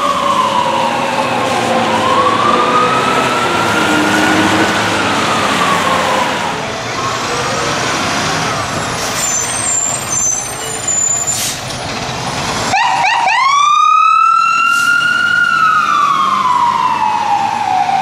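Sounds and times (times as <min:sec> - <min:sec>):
fire engine siren wailing: 0:00.0 - 0:08.8, 0:12.6 - 0:18.0
engine and traffic noise: 0:00.0 - 0:18.0.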